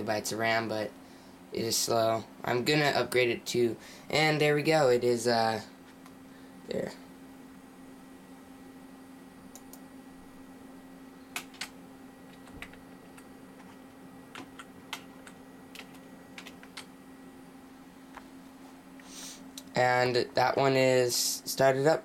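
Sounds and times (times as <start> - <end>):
steady low hum: 0.0 - 22.0
computer keyboard keystrokes: 11.4 - 11.7, 12.3 - 16.9.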